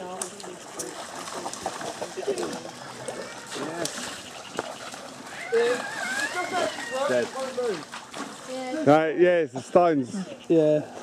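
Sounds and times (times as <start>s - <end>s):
dog splashing: 0.0s - 9.0s
feet wading through water: 0.0s - 9.1s
water splashing in a stony river: 0.0s - 11.0s.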